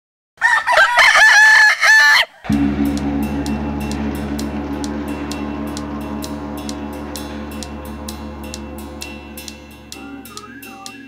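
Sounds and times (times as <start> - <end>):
rooster crowing: 0.4 - 2.5
low music drone with ticks: 2.5 - 11.0.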